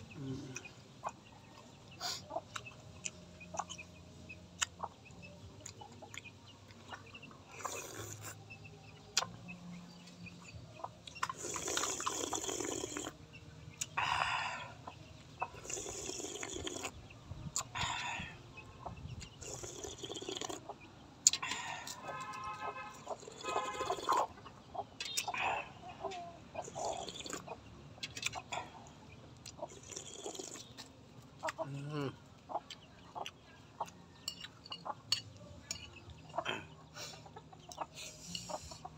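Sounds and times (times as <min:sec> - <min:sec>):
chickens clucking: 0:00.0 - 0:38.9
person slurping soup from a spoon: 0:07.5 - 0:08.4, 0:11.2 - 0:13.2, 0:15.6 - 0:17.0, 0:19.4 - 0:20.6, 0:26.6 - 0:27.5, 0:29.6 - 0:30.7.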